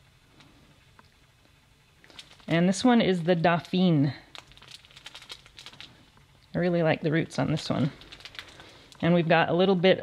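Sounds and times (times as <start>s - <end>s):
plastic bag crinkling: 2.0s - 9.2s.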